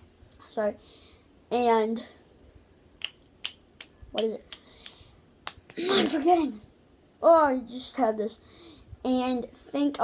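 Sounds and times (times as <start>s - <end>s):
fingers snapping: 3.0s - 5.8s.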